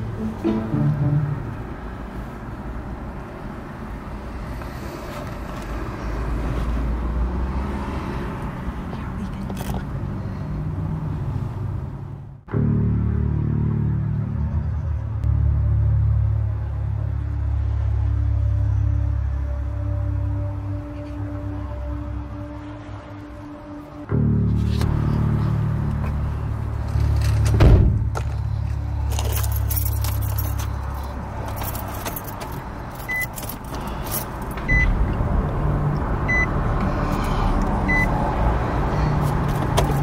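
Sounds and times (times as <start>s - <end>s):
car engine rumbling: 0.0s - 40.0s
car keys jangling: 28.2s - 34.8s, 39.4s - 40.0s
car warning chime beeping: 33.0s - 33.4s, 34.6s - 35.0s, 36.3s - 36.6s, 37.8s - 38.2s.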